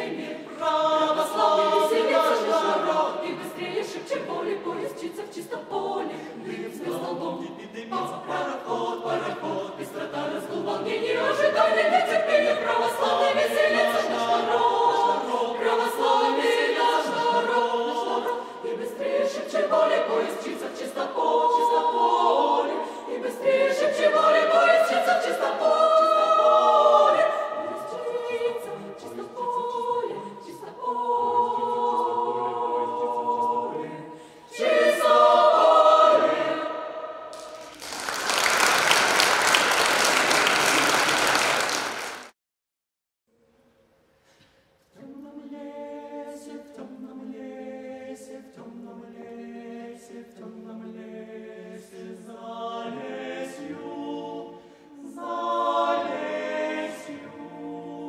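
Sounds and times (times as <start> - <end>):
mixed choir singing a cappella: 0.0 - 42.1, 44.9 - 58.0.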